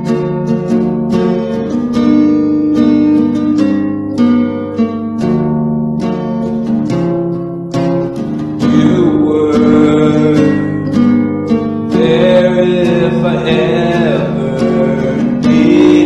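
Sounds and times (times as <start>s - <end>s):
acoustic guitar strumming chords: 0.0s - 16.0s
person singing: 8.6s - 16.0s.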